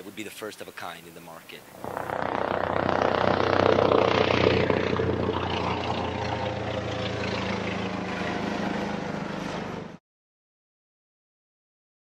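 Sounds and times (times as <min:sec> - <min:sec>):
helicopter rotor chopping: 0:01.7 - 0:09.9.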